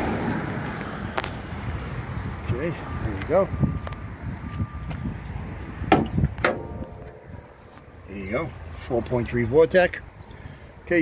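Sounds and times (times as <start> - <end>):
car hood metallic clunks: 5.9 - 7.3.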